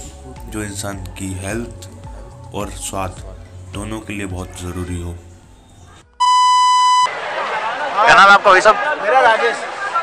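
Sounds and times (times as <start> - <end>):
loud electronic beep: 6.2 - 7.1.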